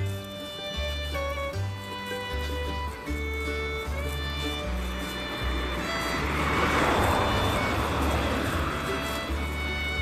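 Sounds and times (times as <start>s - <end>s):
small car passing by: 0.0s - 10.0s.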